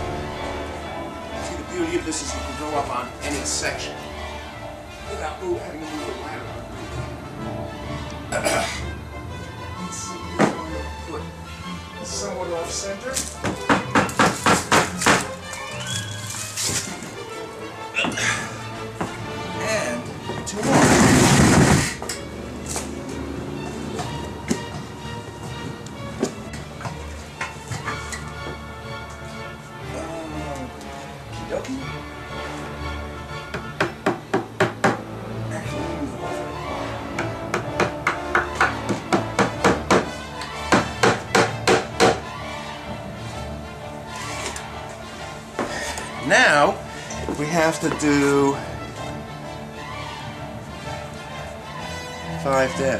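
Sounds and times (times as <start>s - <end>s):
background music: 0.0s - 52.9s
hammer striking a nail: 13.4s - 15.3s, 33.5s - 35.0s, 37.2s - 42.2s.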